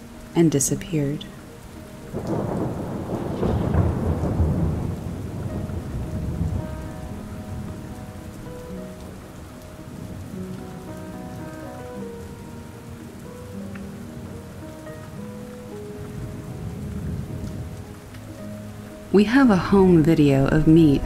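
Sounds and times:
soft sustained music notes: 0.0s - 21.0s
steady rain: 0.0s - 21.0s
thunder rumbling: 2.0s - 21.0s.

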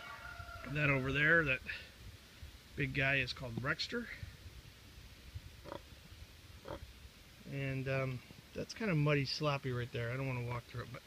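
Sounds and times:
pig grunting: 5.6s - 5.8s, 6.6s - 6.8s.

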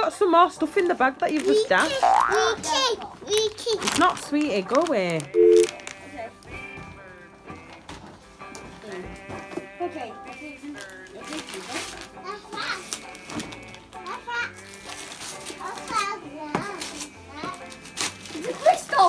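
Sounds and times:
background music: 0.0s - 19.0s
wrapping paper rustling and tearing: 0.9s - 6.2s, 9.2s - 19.0s
children chattering excitedly: 1.3s - 5.3s, 11.4s - 13.4s, 14.0s - 14.7s, 15.5s - 19.0s.

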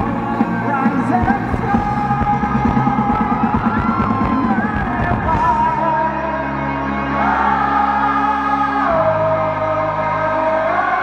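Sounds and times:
rock drums: 0.0s - 6.3s
electric guitar: 0.0s - 11.0s
male lead vocal: 0.0s - 11.0s.

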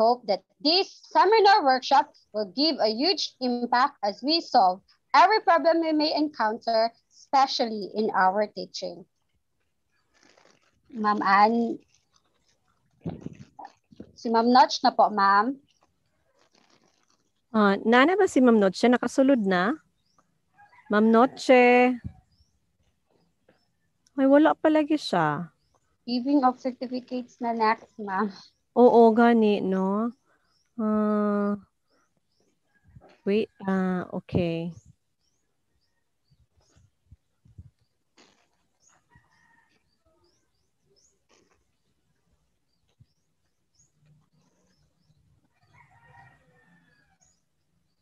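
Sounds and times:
faint bird chirps: 0.0s - 48.0s.

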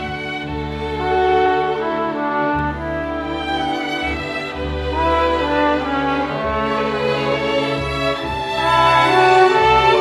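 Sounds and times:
orchestra playing sustained notes: 0.0s - 10.0s.

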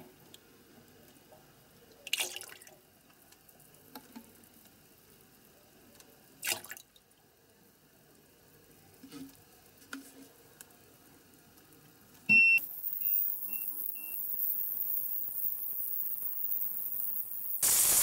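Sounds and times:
short beeps: 12.3s - 14.3s
ultrasonic cleaner hissing: 17.5s - 18.0s.

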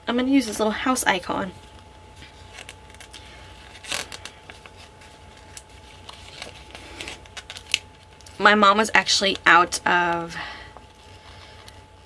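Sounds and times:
vinyl sticker sheet crackling: 1.0s - 12.0s.

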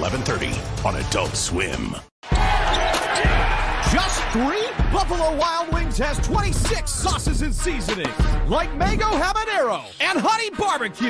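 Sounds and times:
arena crowd noise: 2.2s - 5.7s.

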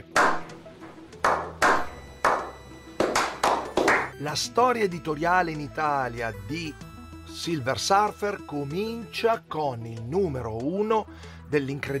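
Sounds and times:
people clapping slowly: 0.0s - 0.5s, 1.2s - 4.2s.

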